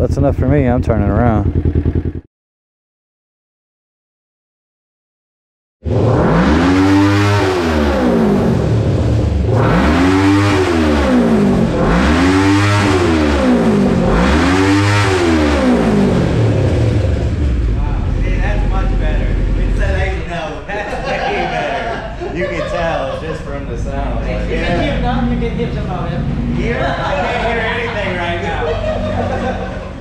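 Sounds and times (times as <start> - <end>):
men's voices: 0.0 - 1.5, 17.7 - 30.0
motorcycle engine idling: 0.0 - 2.2, 16.2 - 20.2, 24.0 - 30.0
motorcycle engine revving: 0.0 - 2.3, 5.8 - 20.7, 23.6 - 30.0.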